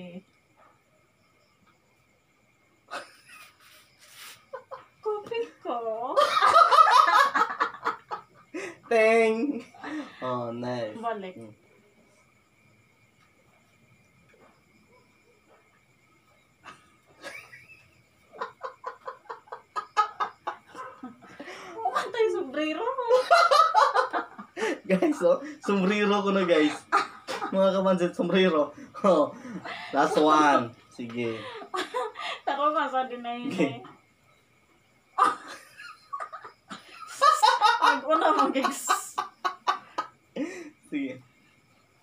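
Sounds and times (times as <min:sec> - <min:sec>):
hearty laughter: 0:02.9 - 0:05.0, 0:06.2 - 0:08.9, 0:16.6 - 0:22.1, 0:23.0 - 0:27.6, 0:28.5 - 0:32.6, 0:35.2 - 0:40.8.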